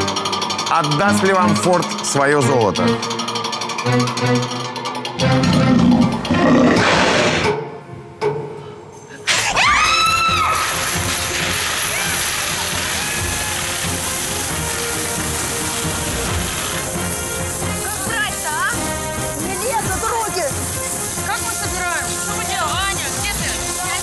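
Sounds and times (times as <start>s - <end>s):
dramatic music: 0.0s - 8.2s, 9.4s - 24.0s
excited screams: 9.3s - 10.9s, 11.6s - 14.0s.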